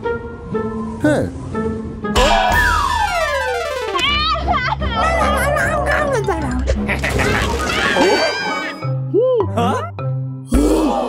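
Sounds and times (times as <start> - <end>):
music: 0.0 - 11.0
cartoon voice wailing and crying: 4.0 - 6.4, 7.7 - 8.8.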